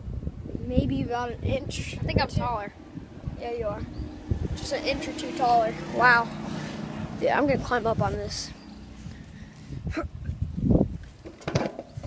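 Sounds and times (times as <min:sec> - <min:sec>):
person grunting with effort: 0:09.8 - 0:10.2.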